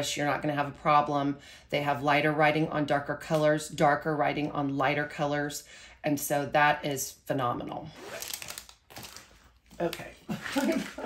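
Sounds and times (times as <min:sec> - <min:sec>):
plastic film crinkling: 0:08.1 - 0:11.0.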